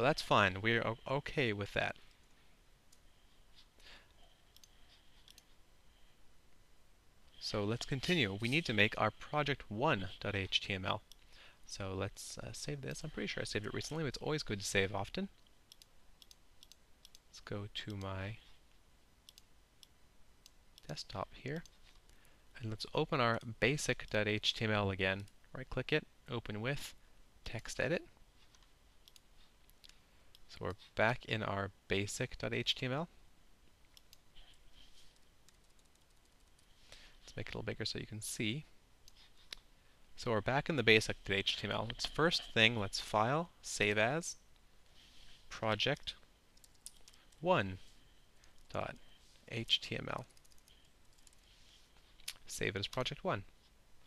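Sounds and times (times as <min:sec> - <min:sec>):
faint computer mouse clicks: 0:04.5 - 0:05.5, 0:15.4 - 0:17.2, 0:19.3 - 0:20.9, 0:28.5 - 0:30.8.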